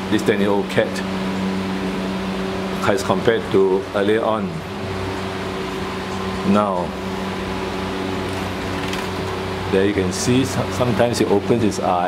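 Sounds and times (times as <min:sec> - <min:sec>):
mechanical hum: 0:00.0 - 0:12.0.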